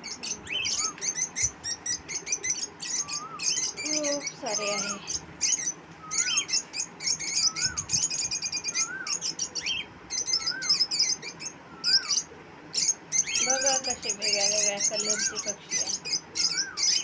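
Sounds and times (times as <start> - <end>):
birds chirping and twittering: 0.0 - 17.0
bird whistling rise-and-fall note: 6.0 - 11.1.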